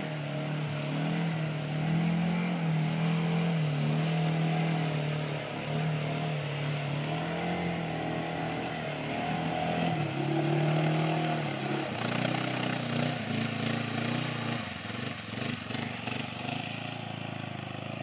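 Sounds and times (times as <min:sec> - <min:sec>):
quad bike engine running hard: 0:00.0 - 0:18.0
water splashing: 0:00.0 - 0:18.0.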